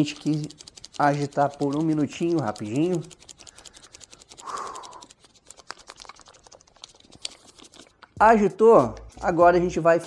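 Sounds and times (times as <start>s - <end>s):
plastic pouch shaken crinkling: 0.0s - 10.0s.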